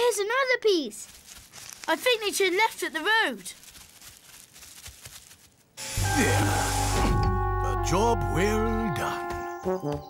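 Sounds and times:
rustling and scraping: 1.0 - 5.8
leaf vacuum humming and hissing: 5.8 - 7.3.

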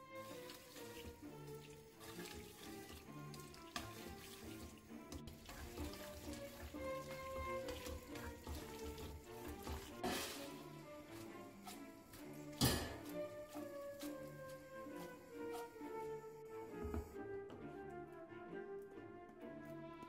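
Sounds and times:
spaghetti sloshing in frying pan: 0.0 - 16.2
soft background music: 0.0 - 20.0.

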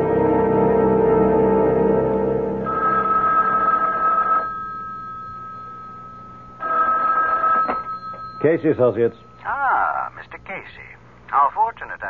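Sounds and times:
telephone bell ringing: 2.7 - 10.2.

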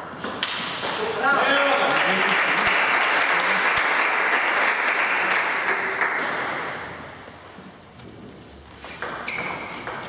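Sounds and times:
spectators applauding: 1.4 - 6.2.

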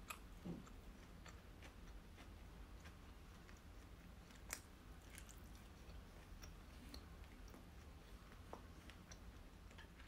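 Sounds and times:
low room hum: 0.0 - 10.0
mouth sounds eating: 0.0 - 10.0.

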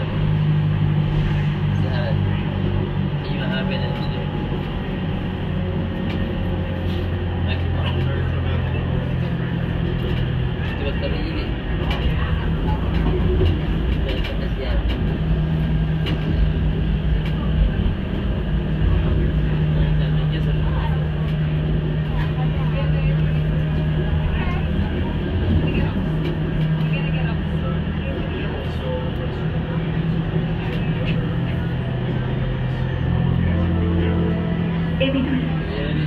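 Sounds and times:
indistinct voices: 0.0 - 36.0
tram rumbling and rattling: 0.0 - 36.0.

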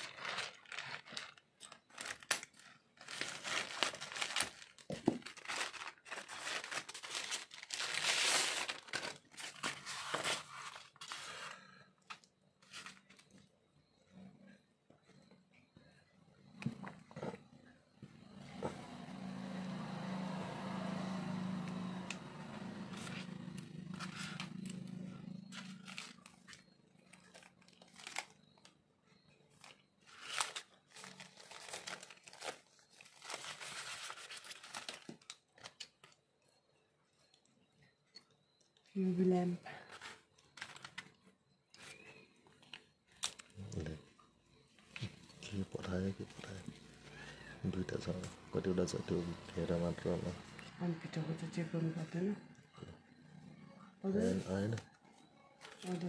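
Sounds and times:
plastic bag crinkling and tearing: 0.0 - 11.6, 25.5 - 28.7, 29.5 - 36.1
plastic parts clicking and rustling: 0.0 - 13.4, 39.9 - 43.6
styrofoam packaging rustling: 0.0 - 13.4, 23.9 - 28.8, 29.5 - 36.2.

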